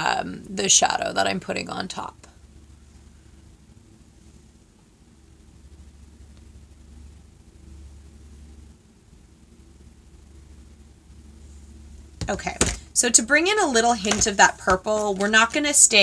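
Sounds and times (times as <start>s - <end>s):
low steady hum: 0.0s - 16.0s
faint hiss: 2.0s - 12.2s.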